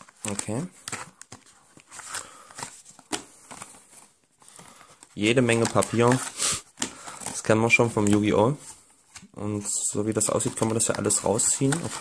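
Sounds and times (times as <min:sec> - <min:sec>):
paper and cardboard rustling: 0:00.0 - 0:12.0
sharp paper crackles: 0:10.0 - 0:12.0.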